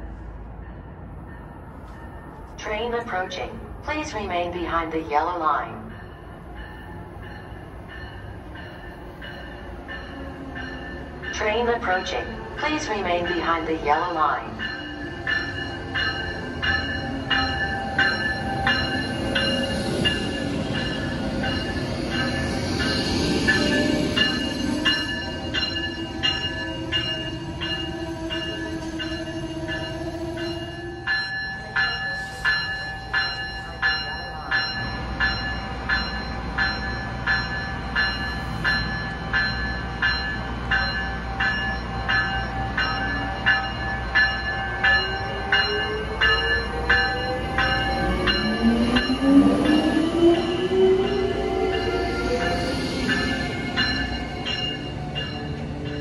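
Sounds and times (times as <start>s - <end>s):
rolling train noise: 0.0s - 56.0s
locomotive bell ringing: 0.7s - 56.0s.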